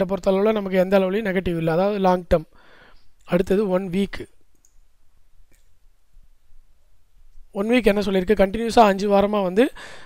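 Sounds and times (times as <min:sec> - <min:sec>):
man speaking: 0:00.0 - 0:02.6, 0:03.3 - 0:04.4, 0:07.5 - 0:09.8
computer mouse clicks: 0:04.5 - 0:04.9, 0:05.5 - 0:05.8.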